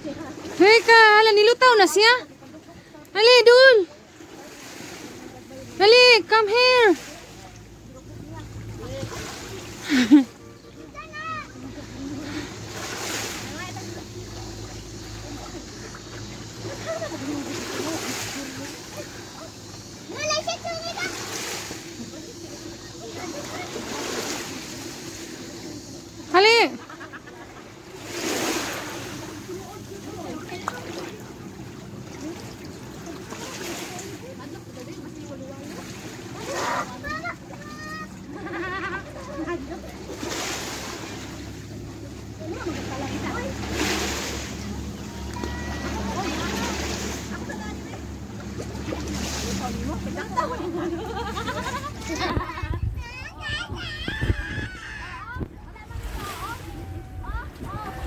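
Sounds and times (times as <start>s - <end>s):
faint voices of people: 0.0s - 58.0s
sea water splashing and lapping: 0.0s - 58.0s
steady low hum: 4.0s - 58.0s.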